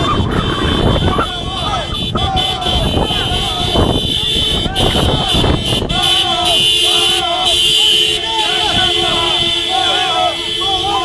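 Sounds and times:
men shouting and chanting: 0.0 - 11.0
vehicles rumbling: 0.0 - 11.0
two-pitch horn-like tone: 1.9 - 11.0.

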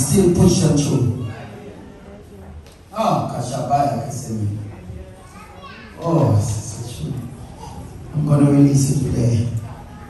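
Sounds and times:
man speaking into a microphone: 0.0 - 1.5, 2.9 - 4.8, 6.0 - 9.7
children's voices: 4.8 - 10.0.

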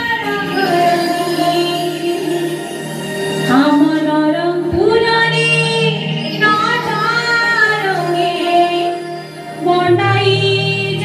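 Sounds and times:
accompanying music: 0.0 - 11.0.

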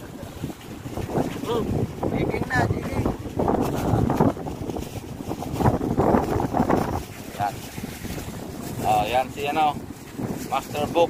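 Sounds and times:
wind buffeting microphone: 0.0 - 11.0
people talking: 1.4 - 3.1, 7.4 - 7.6, 8.8 - 9.8, 10.5 - 11.0.

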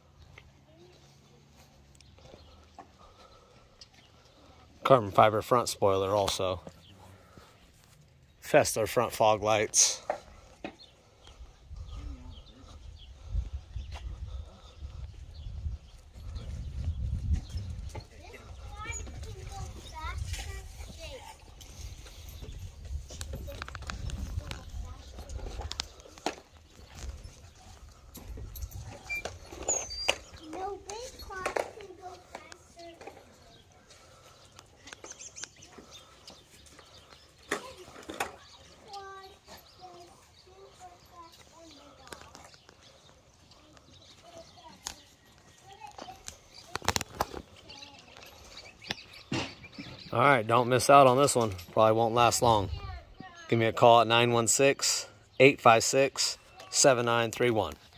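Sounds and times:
distant children calling and talking: 0.0 - 57.9.

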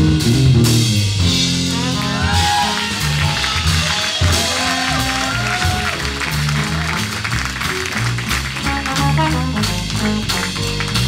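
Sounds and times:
drum kit: 0.0 - 11.0
walking double bass: 0.0 - 11.0
audience applause: 1.7 - 11.0.

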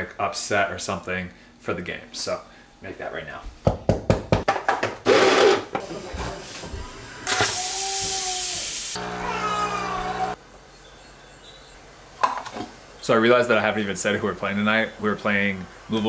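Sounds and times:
loud steam hiss: 7.2 - 9.0
pump buzzing: 9.0 - 10.4.

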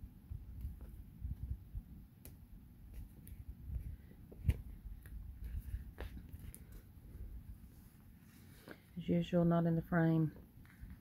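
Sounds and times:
paper rustling: 2.9 - 7.0.

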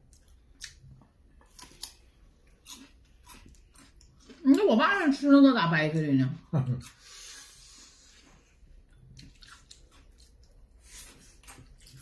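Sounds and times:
wet chewing and sucking: 6.9 - 12.0.

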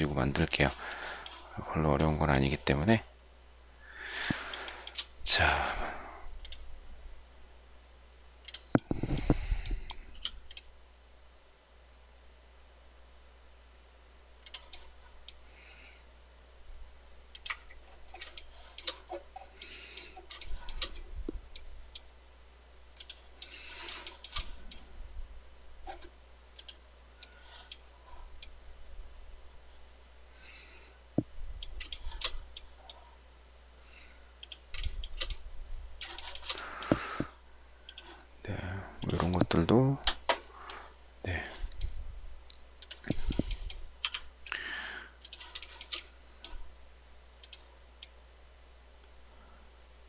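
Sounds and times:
steady low hum: 0.0 - 50.0
computer mouse clicks: 4.2 - 5.1, 6.4 - 6.7, 8.4 - 10.7, 14.4 - 15.4, 17.3 - 22.1, 23.0 - 24.8, 25.9 - 27.8, 34.4 - 35.4, 37.9 - 38.2, 39.0 - 39.5, 42.5 - 46.6, 47.4 - 48.2
mouse and keyboard clicking: 42.8 - 44.6.

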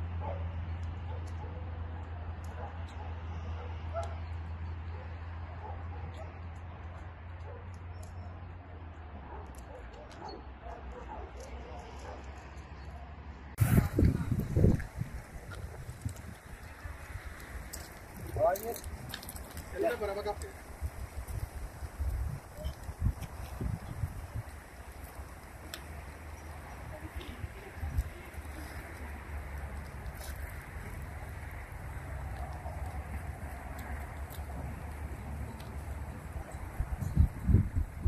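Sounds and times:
wind rumble on microphone: 13.6 - 38.0.

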